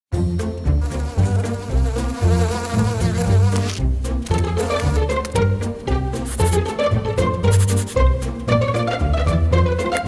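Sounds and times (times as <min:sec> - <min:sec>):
cartoon insect buzzing: 0:00.8 - 0:05.1, 0:06.1 - 0:06.7, 0:07.4 - 0:08.1.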